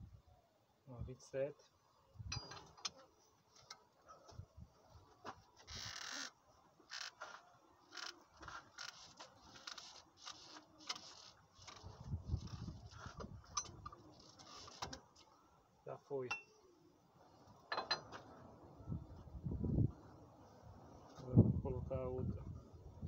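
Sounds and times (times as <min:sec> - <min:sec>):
small clicks and knocks: 0:05.3 - 0:15.3
rubber belt scraping and rubbing: 0:05.6 - 0:15.0.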